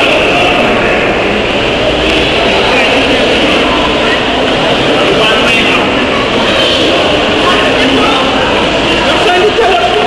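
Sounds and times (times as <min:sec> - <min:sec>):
indistinct voices: 0:00.0 - 0:10.0
loud background noise: 0:00.0 - 0:10.0.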